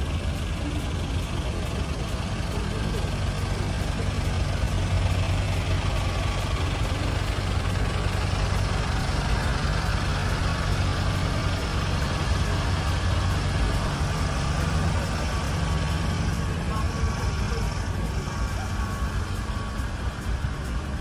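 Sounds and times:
truck engine idling: 0:00.0 - 0:21.0.

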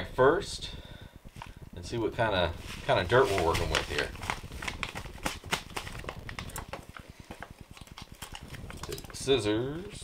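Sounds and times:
foil pouch crinkling: 0:02.2 - 0:10.0.

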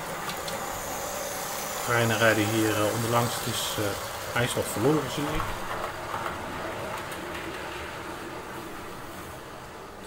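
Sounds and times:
model train wheels on rails: 0:00.0 - 0:10.0.

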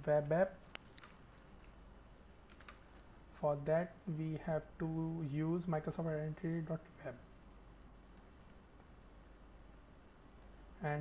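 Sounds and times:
low steady hiss: 0:00.0 - 0:11.0
faint computer clicks: 0:08.0 - 0:08.6, 0:09.5 - 0:09.8, 0:10.4 - 0:10.6.

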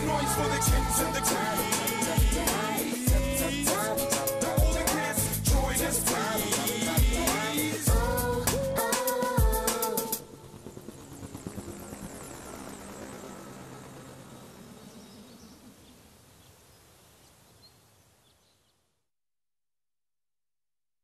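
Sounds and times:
low noisy ambient tail: 0:10.2 - 0:17.0.

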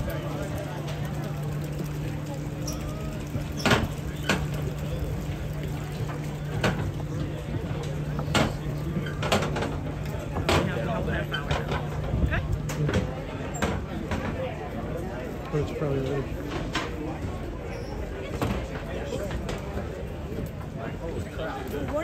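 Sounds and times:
sharp clicks and knocks: 0:00.0 - 0:14.6
people chattering: 0:00.0 - 0:22.0.

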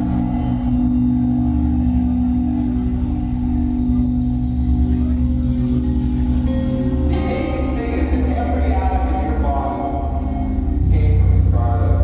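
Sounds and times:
distorted guitars droning chord: 0:00.0 - 0:12.0.

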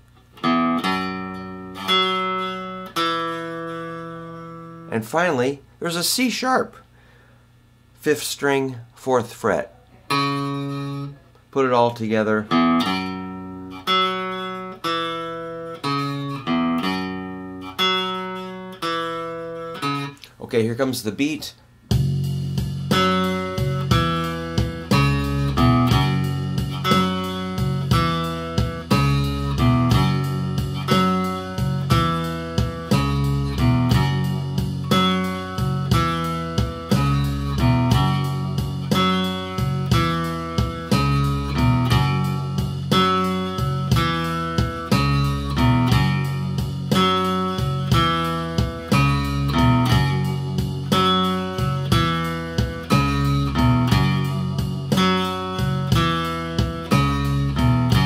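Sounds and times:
electric guitar blues riff: 0:00.0 - 0:07.3, 0:09.9 - 0:58.0
drum machine beat: 0:21.8 - 0:58.0.

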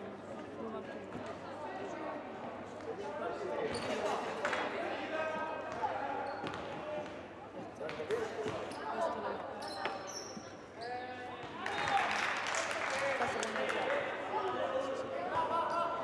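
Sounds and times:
voices of players and spectators: 0:00.0 - 0:16.0.

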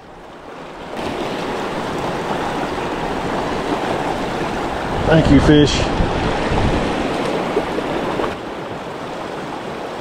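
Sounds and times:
river rushing over rocks: 0:00.4 - 0:10.0.

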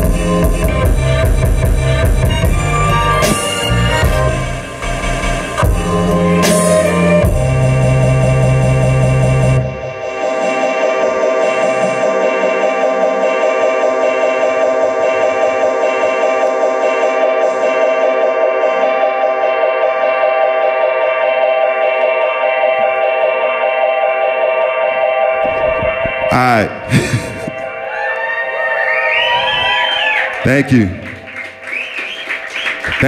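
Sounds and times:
dense held chord: 0:00.0 - 0:29.1
sliding synth melody: 0:00.0 - 0:30.3.

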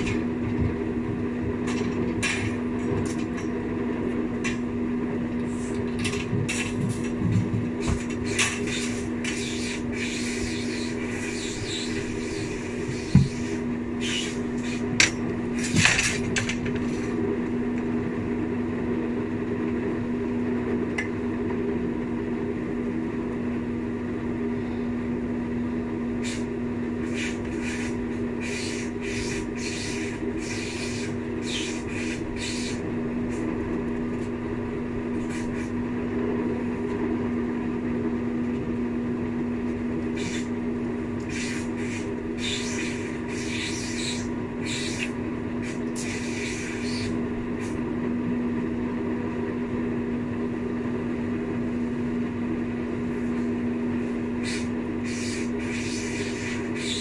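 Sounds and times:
jacuzzi pump motor hum: 0:00.0 - 0:57.0.

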